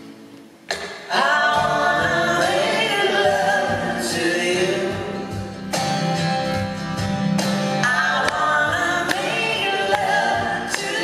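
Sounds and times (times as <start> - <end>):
acoustic guitar: 0.0 - 11.0
voices singing in harmony: 1.0 - 5.4, 7.8 - 11.0.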